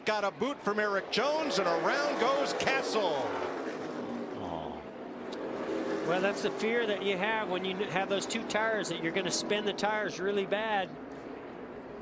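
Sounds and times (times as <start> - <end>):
race car engines: 0.0 - 12.0.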